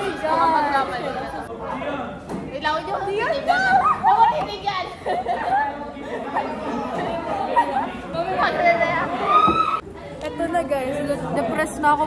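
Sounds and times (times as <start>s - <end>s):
young women chattering: 0.0s - 1.5s, 2.5s - 12.0s
laughter: 4.9s - 8.0s.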